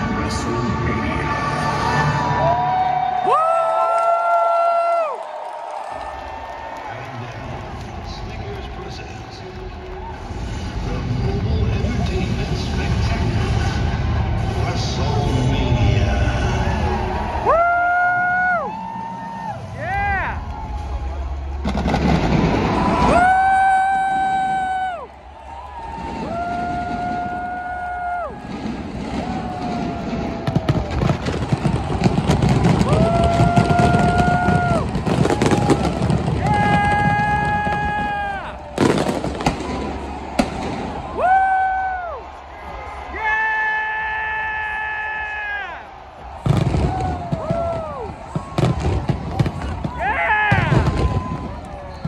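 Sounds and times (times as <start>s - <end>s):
crowd noise: 0.0s - 52.0s
crackling firework bangs: 21.5s - 23.4s, 28.3s - 41.2s, 46.3s - 52.0s
fireworks whistling: 28.3s - 41.0s, 46.4s - 52.0s.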